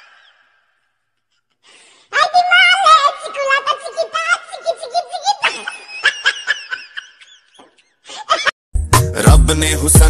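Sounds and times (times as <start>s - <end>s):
woman laughing hard: 5.4s - 8.6s.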